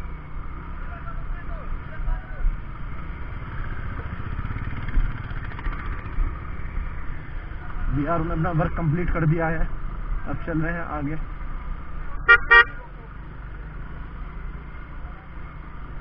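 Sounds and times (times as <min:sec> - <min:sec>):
motorcycle engine running: 0:00.0 - 0:09.0.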